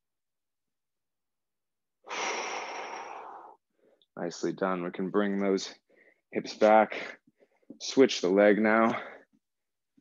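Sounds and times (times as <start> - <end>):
man breathing in: 2.0 - 4.0, 5.9 - 6.3.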